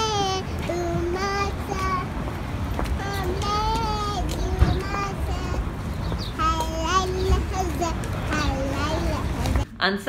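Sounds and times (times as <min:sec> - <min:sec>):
girl singing: 0:00.0 - 0:09.6
low street rumble: 0:00.0 - 0:10.0.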